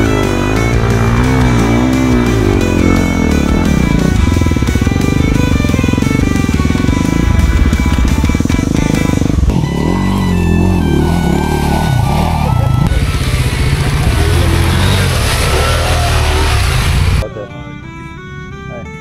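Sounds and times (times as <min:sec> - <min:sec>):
motorcycle engine revving: 0:00.0 - 0:17.2
background music: 0:00.0 - 0:19.0.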